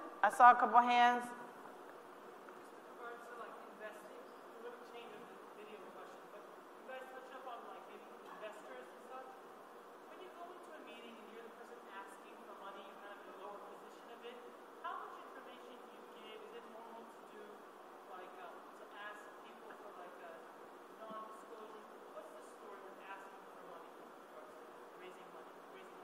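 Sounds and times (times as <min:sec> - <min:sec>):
room noise: 0:00.0 - 0:26.0
woman asking a question: 0:00.2 - 0:01.5.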